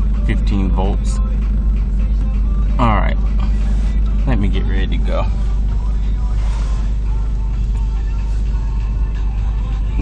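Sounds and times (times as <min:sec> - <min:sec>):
car engine idling: 0:00.0 - 0:10.0
music from car stereo: 0:00.0 - 0:10.0.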